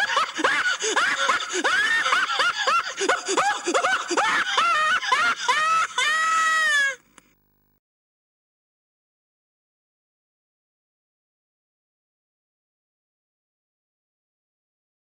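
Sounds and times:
man's hysterical cackling laughter: 0.0s - 7.0s.

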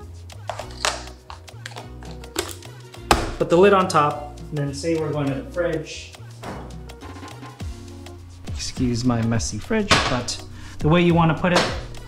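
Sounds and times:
background music with bass line: 0.0s - 12.0s
plastic cup tapping on wood: 0.5s - 3.4s.

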